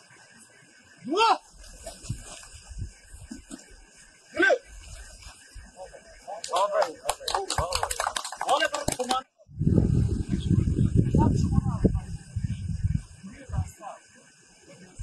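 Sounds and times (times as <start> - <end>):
men shouting: 1.0 - 1.5.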